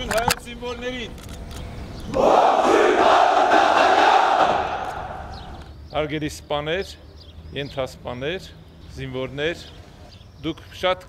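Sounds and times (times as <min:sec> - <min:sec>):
soldiers shouting in unison: 0:02.1 - 0:05.5.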